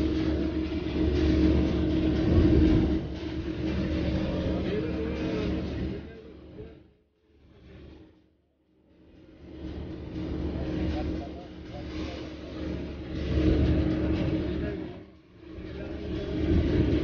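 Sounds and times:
engine hum: 0.0s - 6.7s, 9.1s - 17.0s.

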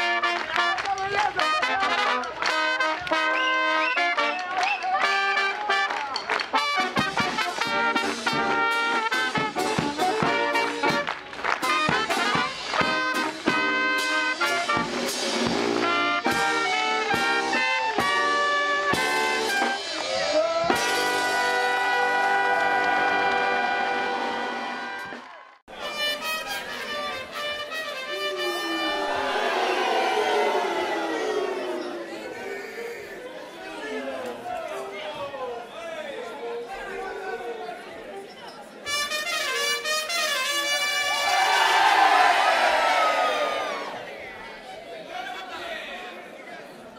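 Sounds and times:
brass band holding a chord: 5.0s - 19.9s, 20.7s - 31.7s
crowd cheering and shouting: 19.8s - 26.0s, 27.9s - 37.9s, 40.9s - 46.1s
held shout: 27.9s - 33.4s.

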